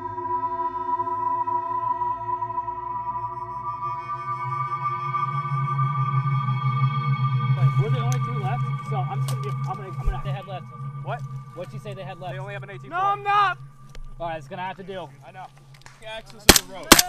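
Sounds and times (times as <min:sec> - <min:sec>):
ambient synthesizer drone: 0:00.0 - 0:15.8
indistinct voices: 0:07.5 - 0:17.0.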